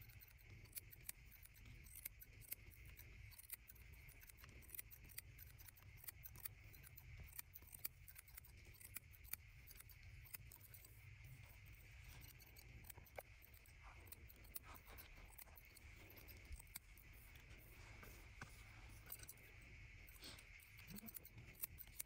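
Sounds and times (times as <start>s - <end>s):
scissors snipping hair: 0.0s - 22.0s.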